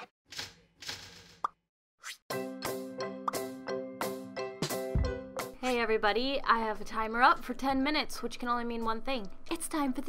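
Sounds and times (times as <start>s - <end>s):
upbeat music with steady beat: 2.4s - 5.8s.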